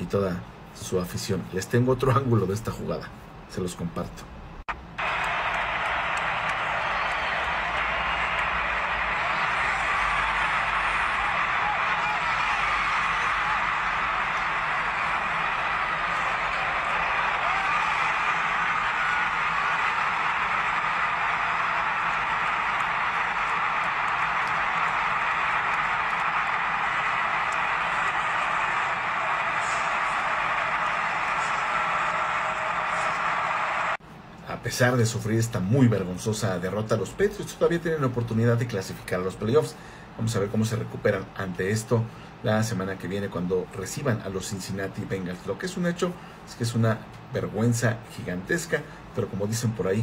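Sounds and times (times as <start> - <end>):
stadium crowd cheering: 4.7 - 34.0, 34.7 - 50.0.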